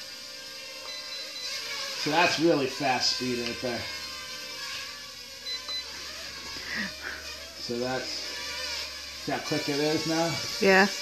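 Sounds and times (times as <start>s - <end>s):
drone propellers whining: 0.8s - 8.3s.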